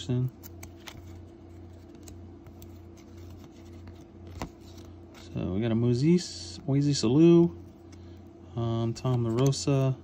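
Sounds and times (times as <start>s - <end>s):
steady low hum: 0.0s - 10.0s
cards scraping and sliding: 0.2s - 5.4s.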